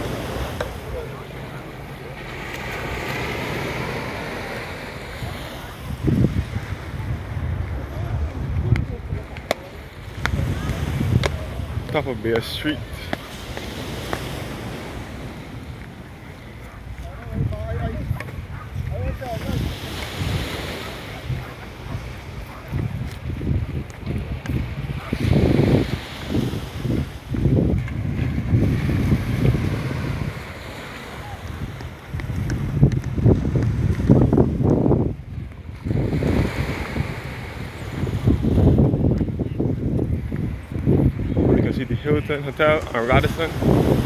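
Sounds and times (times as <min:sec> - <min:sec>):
small waves washing on shore: 0:00.0 - 0:44.0
wind buffeting microphone: 0:00.0 - 0:44.0.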